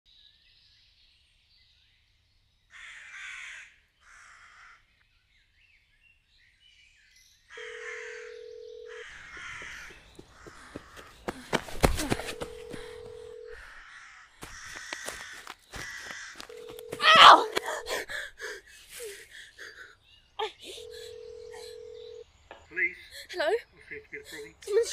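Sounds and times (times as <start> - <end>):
crows cawing: 2.7 - 4.8, 7.5 - 18.5
rising cry: 16.9 - 18.4.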